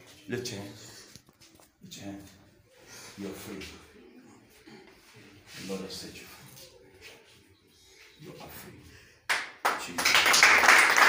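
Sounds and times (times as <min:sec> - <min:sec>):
hands clapping: 0:09.3 - 0:11.0.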